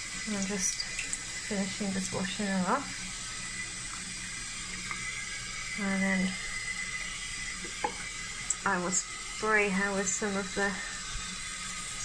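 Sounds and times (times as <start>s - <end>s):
tap water running into sink: 0.0s - 12.0s.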